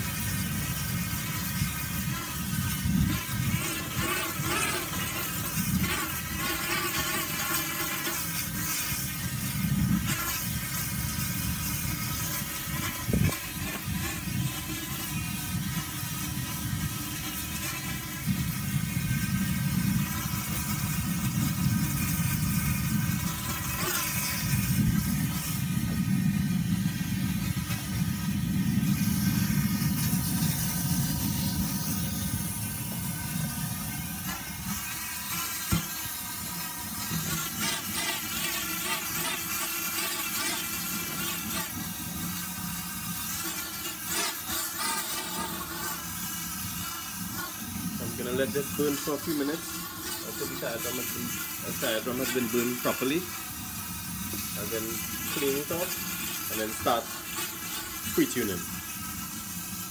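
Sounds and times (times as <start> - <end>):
gas burner rumbling: 0.0 - 59.9.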